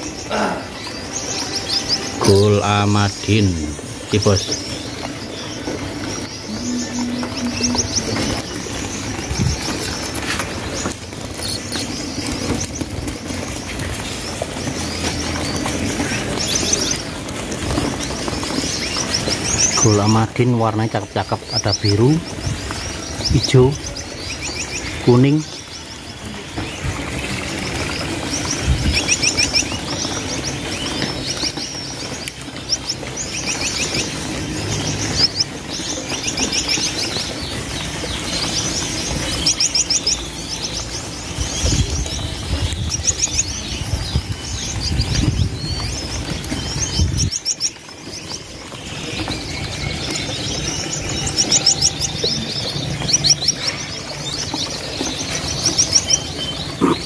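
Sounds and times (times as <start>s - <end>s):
finches chirping: 0.0s - 57.0s.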